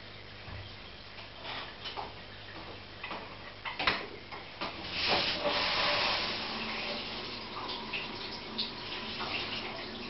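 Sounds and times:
aquarium filter hum: 0.0s - 10.0s.

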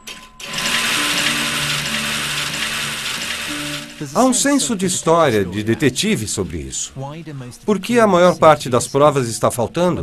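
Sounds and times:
mechanical whirring: 0.0s - 4.5s
low sustained musical notes: 0.8s - 7.3s.

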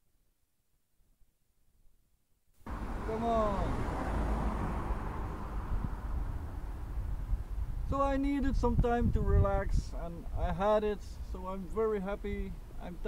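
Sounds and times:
wind rumble on microphone: 3.6s - 12.8s.

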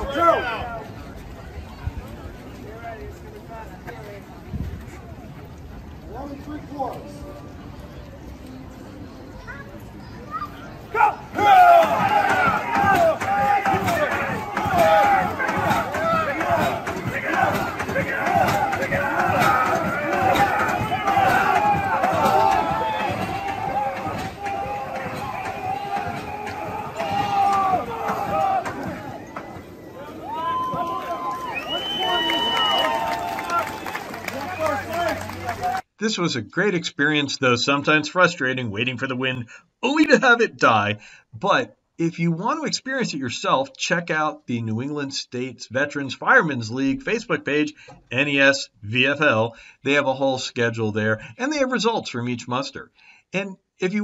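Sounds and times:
crowd shouting and cheering: 0.0s - 1.0s, 10.2s - 35.8s.

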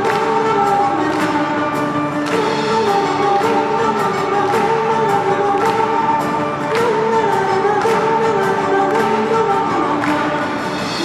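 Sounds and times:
live band music: 0.0s - 11.0s
person singing: 0.0s - 11.0s.

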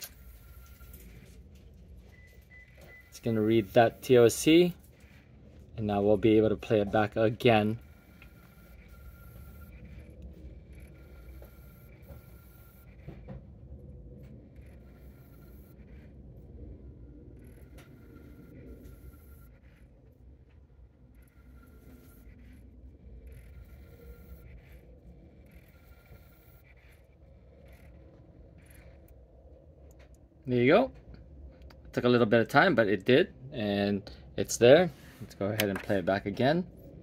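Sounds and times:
disc drive whirring: 0.0s - 32.8s
high whine: 0.0s - 37.0s.

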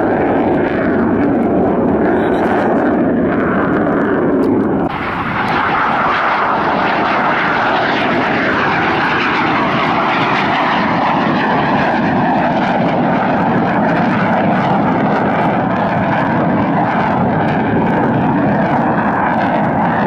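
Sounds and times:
jet engine roaring: 0.0s - 20.0s.

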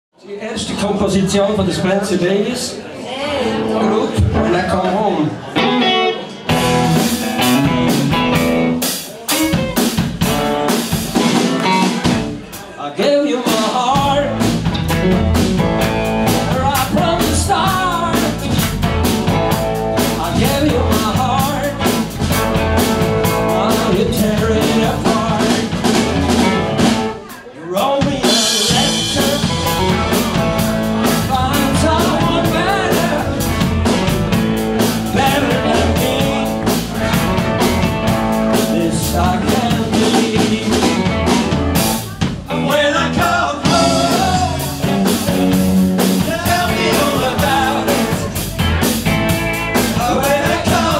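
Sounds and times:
electric guitar: 3.4s - 12.4s, 14.0s - 27.3s, 28.2s - 50.9s
bass guitar: 3.4s - 12.6s, 13.4s - 27.4s, 28.0s - 50.9s
drum kit: 5.6s - 12.8s, 13.4s - 50.9s
man singing: 12.8s - 14.6s, 16.1s - 18.7s, 20.0s - 22.1s, 22.8s - 26.1s, 27.6s - 34.0s, 34.8s - 37.8s, 38.4s - 45.4s, 46.0s - 48.7s, 49.8s - 50.9s.

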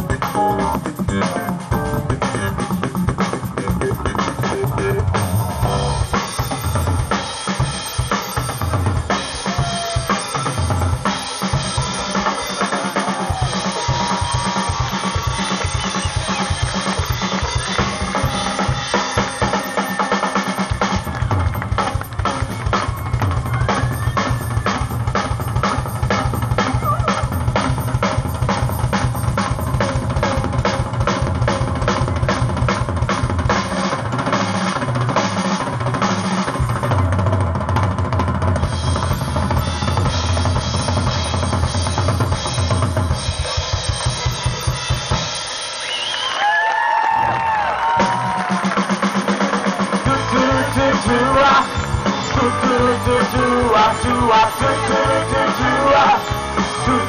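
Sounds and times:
drum kit playing fast beat: 0.0s - 57.0s.

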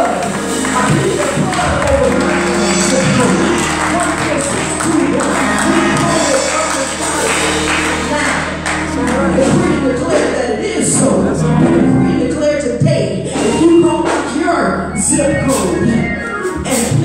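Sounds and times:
held instrumental chords: 0.0s - 17.0s.

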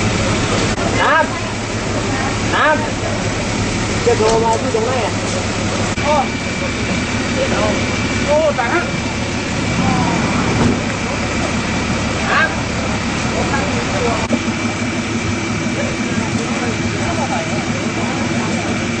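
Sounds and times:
faint voices talking: 0.0s - 19.0s
vehicle engine idling: 0.0s - 19.0s.

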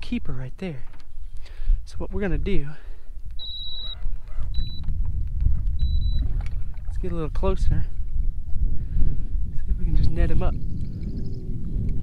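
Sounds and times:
wind buffeting microphone: 0.0s - 12.0s
short high beeps: 3.4s - 4.9s, 5.8s - 6.3s.

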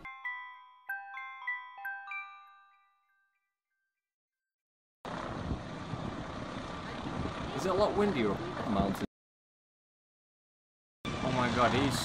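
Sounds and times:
wind buffeting microphone: 5.1s - 9.0s.

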